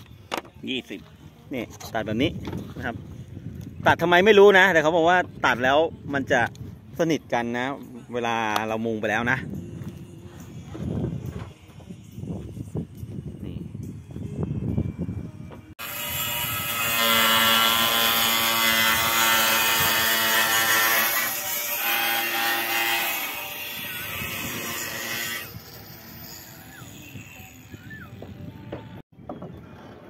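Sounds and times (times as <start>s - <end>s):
power cutter grinding tile: 15.8s - 27.5s.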